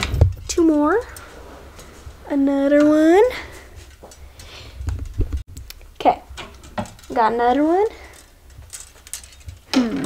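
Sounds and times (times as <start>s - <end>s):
plastic clothes hangers clicking: 6.4s - 10.0s.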